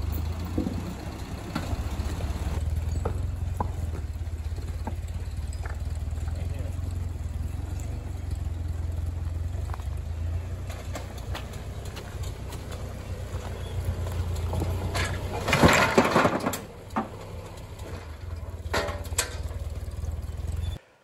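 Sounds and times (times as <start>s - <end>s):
tractor engine idling: 0.0s - 20.8s
rocks clattering down: 10.6s - 17.3s.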